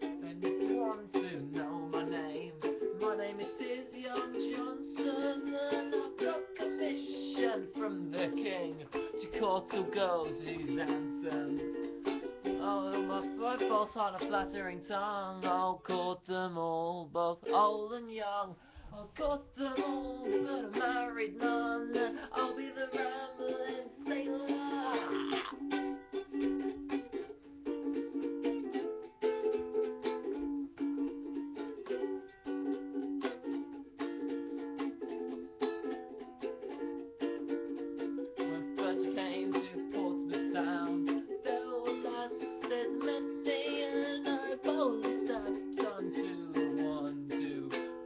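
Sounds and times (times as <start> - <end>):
ukulele strumming chords: 0.0 - 48.0.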